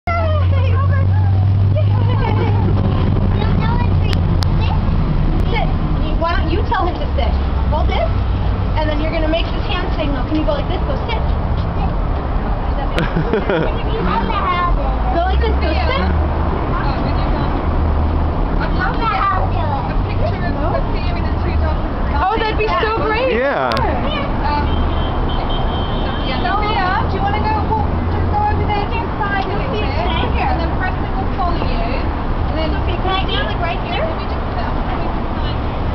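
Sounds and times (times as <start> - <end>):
street traffic rumble: 0.0 - 35.9
voices talking: 0.1 - 35.9
excited high-pitched voices: 12.9 - 16.4.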